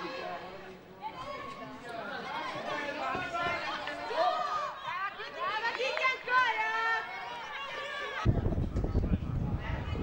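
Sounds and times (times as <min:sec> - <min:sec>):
overlapping voices calling out: 0:02.2 - 0:08.3.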